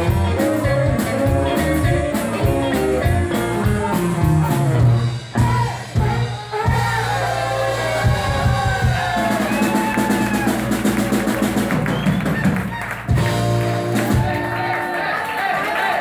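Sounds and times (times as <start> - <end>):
electric guitar: 0.0 - 6.3
electric bass: 0.0 - 14.6
drum kit: 0.0 - 15.0.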